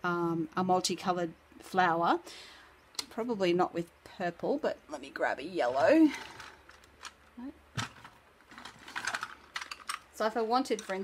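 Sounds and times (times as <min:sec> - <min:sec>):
wooden pencils clicking: 0:10.7 - 0:11.0.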